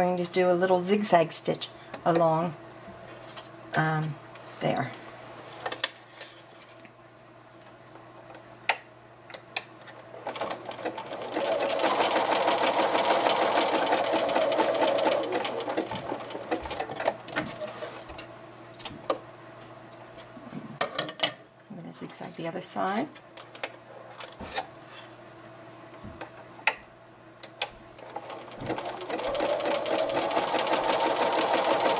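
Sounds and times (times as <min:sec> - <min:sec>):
sewing machine running: 0:10.2 - 0:17.2, 0:28.0 - 0:31.9.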